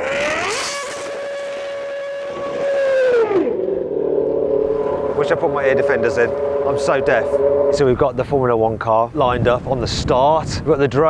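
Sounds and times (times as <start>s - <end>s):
racing car engine revving: 0.0s - 8.4s.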